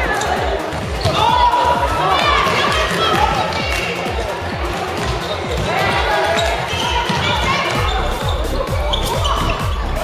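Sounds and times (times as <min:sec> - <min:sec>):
people calling out: 0:05.2 - 0:10.0.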